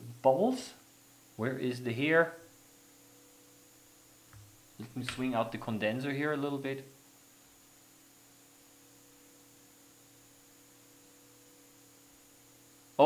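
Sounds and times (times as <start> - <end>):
steady low hum: 0.0 - 13.0.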